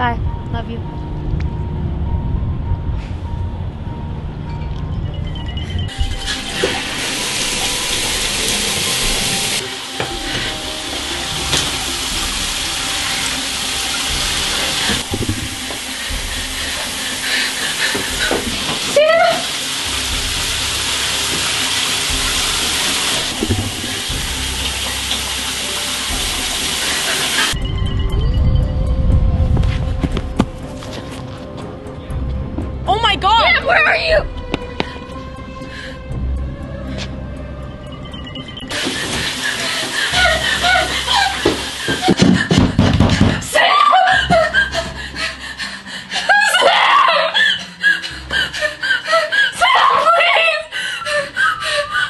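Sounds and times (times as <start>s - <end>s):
music: 0.0s - 52.0s
shower water running: 5.6s - 27.6s, 38.4s - 52.0s.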